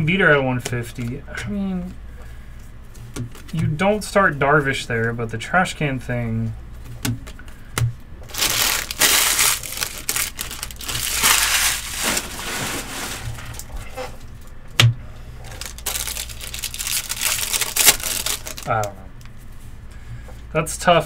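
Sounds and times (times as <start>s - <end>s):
foil packs crinkling: 8.2s - 13.7s, 15.4s - 19.0s.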